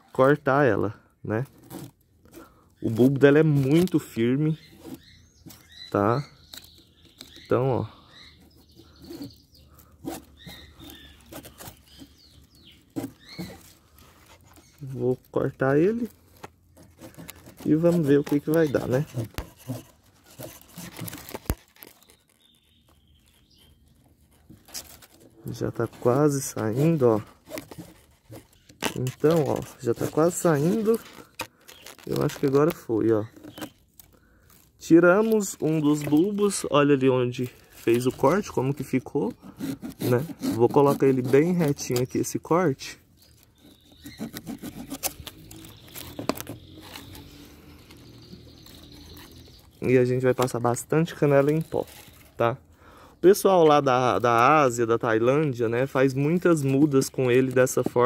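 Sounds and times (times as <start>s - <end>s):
knife scraping and crackling: 1.4s - 52.7s, 53.4s - 58.0s.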